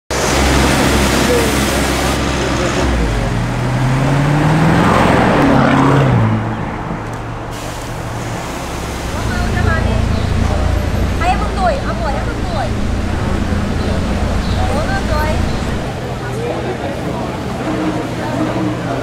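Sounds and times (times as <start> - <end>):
another car engine: 0.1 - 19.0
car accelerating hard: 0.1 - 19.0
loud street traffic: 0.1 - 19.0.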